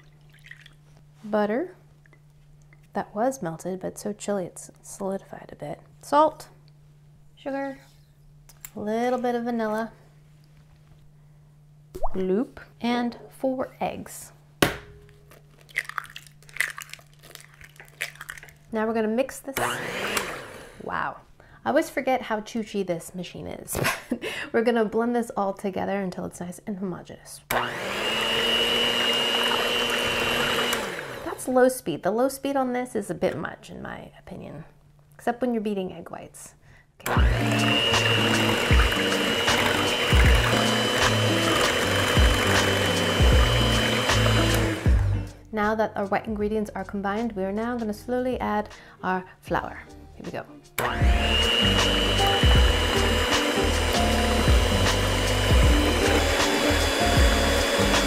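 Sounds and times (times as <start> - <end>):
eggshells cracking: 15.3 - 18.7
electric hand mixer whining: 19.6 - 20.9, 27.5 - 31.4, 37.0 - 45.3, 50.8 - 58.0.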